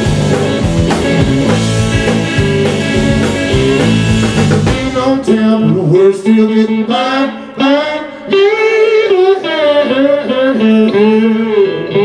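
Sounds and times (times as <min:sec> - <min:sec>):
blues lead line with bending notes: 0:00.0 - 0:12.0.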